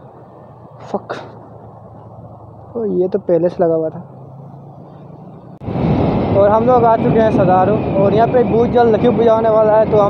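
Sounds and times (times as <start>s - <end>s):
motorcycle engine: 0.0s - 10.0s
wind rushing over microphone: 5.4s - 10.0s.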